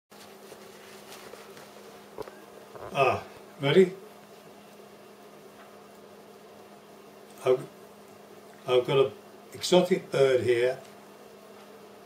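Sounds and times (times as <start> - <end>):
soft rustles: 0.1 - 3.0
faint buzzing hum: 0.1 - 12.0.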